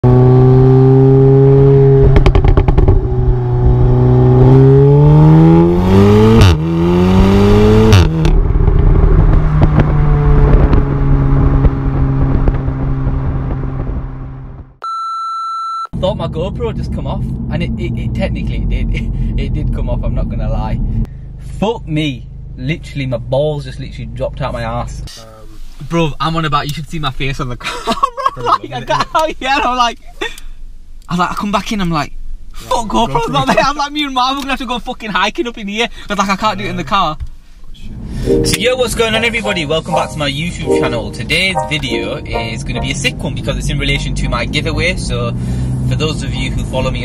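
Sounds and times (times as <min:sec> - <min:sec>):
car exhaust revving: 0:00.0 - 0:14.6
exhaust cracks: 0:02.0 - 0:14.6
short beep: 0:14.8 - 0:15.9, 0:38.3 - 0:43.2
person talking: 0:38.3 - 0:43.6.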